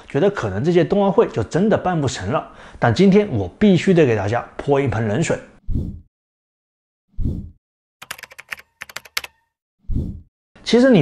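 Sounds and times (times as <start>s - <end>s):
keyboard typing clicks: 8.0s - 9.5s.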